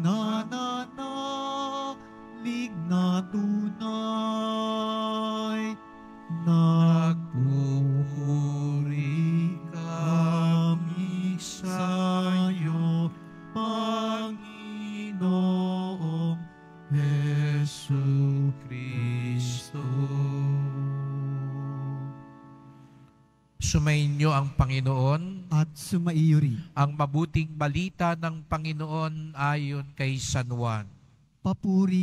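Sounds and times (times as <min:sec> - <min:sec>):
church singing: 0:00.0 - 0:22.8
sustained instrumental accompaniment: 0:00.0 - 0:24.9.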